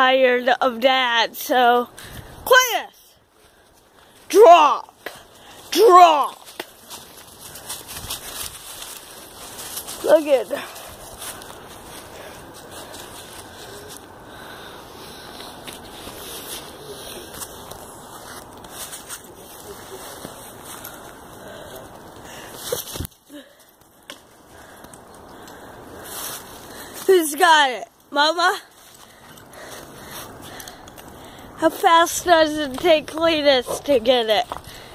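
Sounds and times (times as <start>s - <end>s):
rustling dry leaves: 3.2s - 34.9s.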